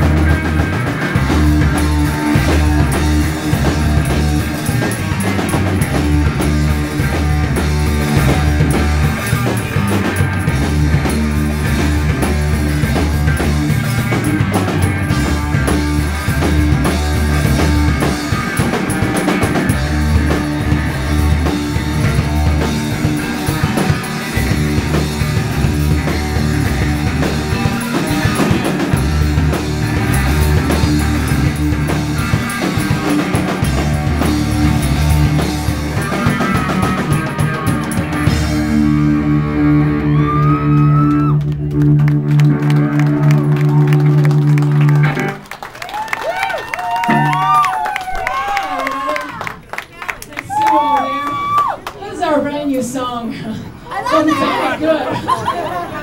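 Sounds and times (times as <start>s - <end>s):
distorted electric guitars: 0.0s - 45.7s, 46.8s - 48.5s
drum kit: 0.0s - 48.7s
bass guitar: 0.0s - 49.5s.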